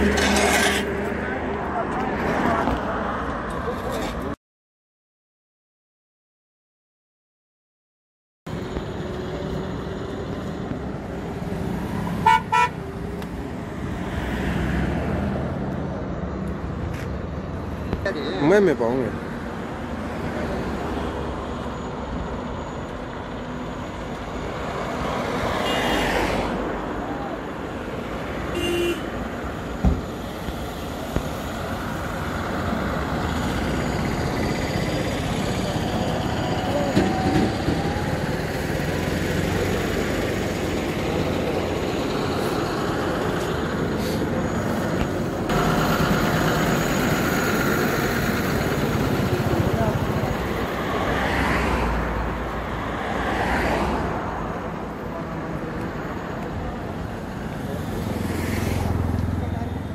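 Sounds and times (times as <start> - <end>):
vehicles passing: 0.0 - 4.4, 8.5 - 59.9
bystanders talking: 1.0 - 4.4, 34.1 - 39.3, 39.9 - 51.8, 54.5 - 59.9
car horn toot: 12.2 - 12.8, 28.5 - 29.1.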